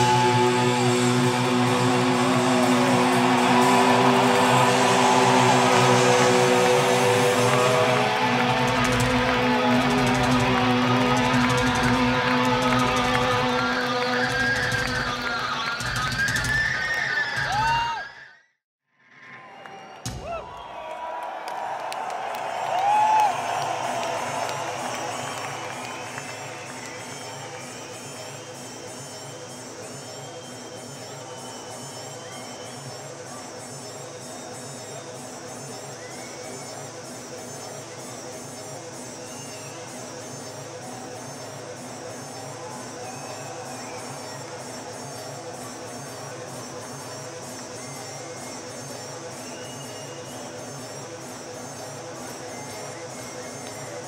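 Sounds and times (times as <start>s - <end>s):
low pulsing ambient music: 0.0s - 15.9s, 22.9s - 54.0s
crowd cheering: 0.0s - 18.3s, 19.2s - 54.0s
crowd whistling: 0.0s - 18.6s, 19.2s - 54.0s.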